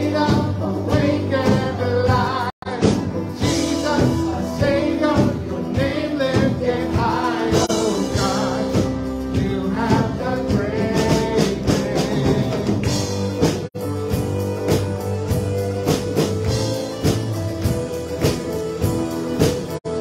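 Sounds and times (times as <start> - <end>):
women singing into microphones: 0.0 - 12.6
drum kit: 0.0 - 20.0
keyboard: 0.0 - 20.0.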